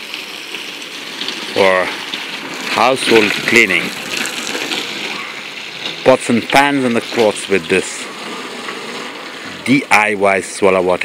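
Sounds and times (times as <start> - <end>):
hose water splashing on pipe: 0.0 - 11.0.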